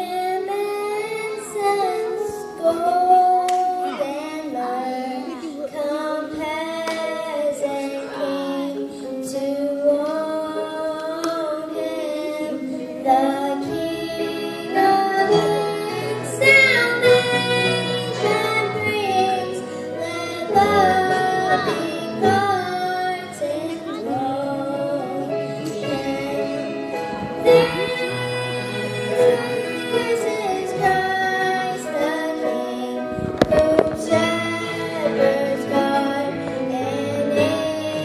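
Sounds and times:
girl singing into a microphone: 0.0s - 38.0s
instrumental accompaniment: 0.0s - 38.0s.

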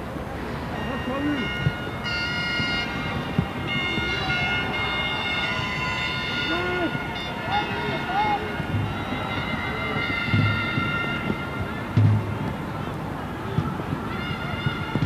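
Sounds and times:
stadium crowd noise: 0.0s - 15.0s
fans' horns long high notes: 0.8s - 12.4s.

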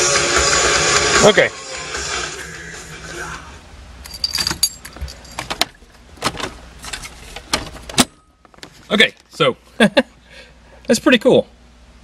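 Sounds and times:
hard rock music from car stereo: 0.0s - 3.6s
low steady hum: 3.0s - 12.0s
handling clicks and rattles: 4.1s - 9.3s.

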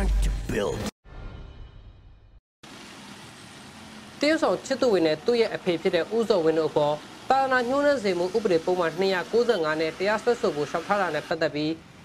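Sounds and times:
road traffic hum: 2.6s - 12.0s.

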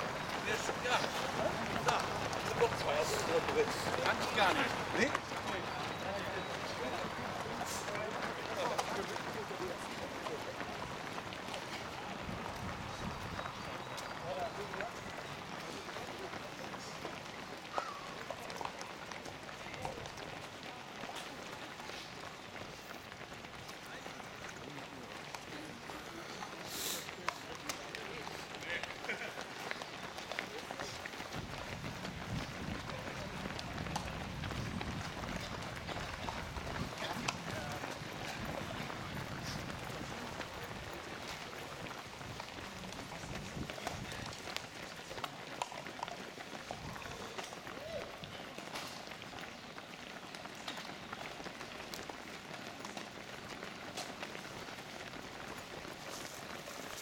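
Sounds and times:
runners' footsteps on cobblestones: 0.0s - 57.0s.

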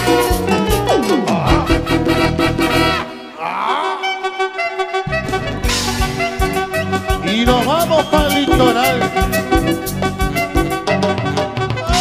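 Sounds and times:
latin dance band: 0.0s - 3.4s, 4.0s - 12.0s
wind instrument sliding phrase: 4.0s - 10.2s.

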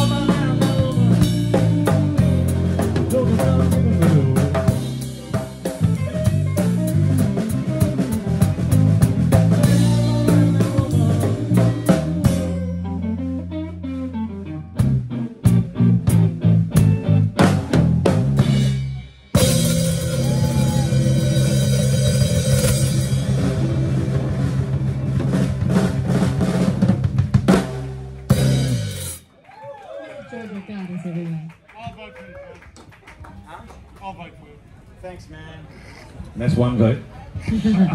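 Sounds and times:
bass riff: 0.0s - 29.3s
soul band playing: 0.0s - 29.6s
drum kit hits: 16.1s - 29.2s.

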